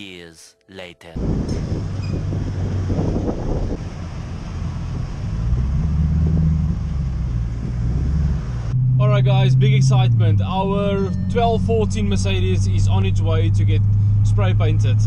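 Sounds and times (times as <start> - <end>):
wind on microphone: 1.2 - 4.0
truck diesel engine rumble: 1.2 - 15.0.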